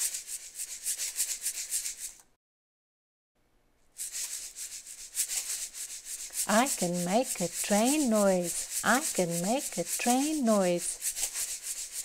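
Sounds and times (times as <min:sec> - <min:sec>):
rhythmic scraping hiss: 0:04.0 - 0:12.0.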